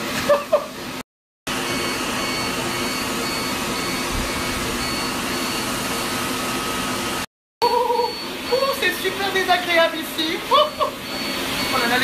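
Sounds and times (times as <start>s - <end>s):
faint high beep: 7.6s - 9.6s, 10.6s - 12.0s.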